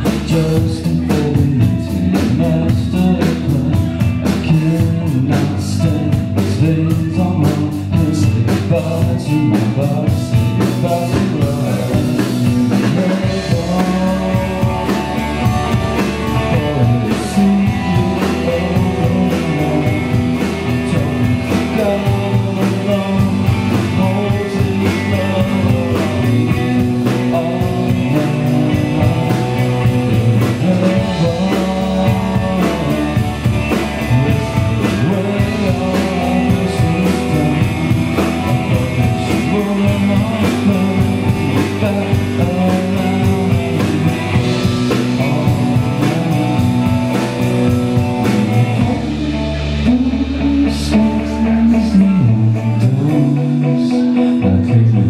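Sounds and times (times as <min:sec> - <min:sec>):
bass guitar: 0:00.0 - 0:55.0
drum kit: 0:00.0 - 0:55.0
electric guitar: 0:00.0 - 0:55.0
man singing: 0:00.0 - 0:55.0.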